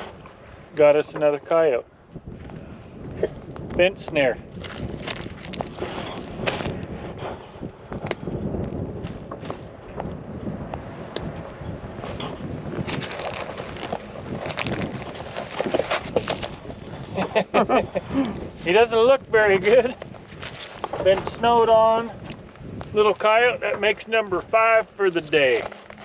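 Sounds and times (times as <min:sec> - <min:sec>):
wind buffeting microphone: 0:00.0 - 0:26.0
rustles and clicks in dry grass: 0:02.2 - 0:17.4, 0:19.3 - 0:21.4, 0:25.1 - 0:26.0.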